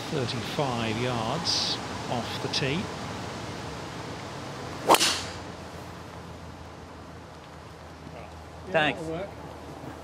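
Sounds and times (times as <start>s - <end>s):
golf club striking ball: 4.8s - 5.5s.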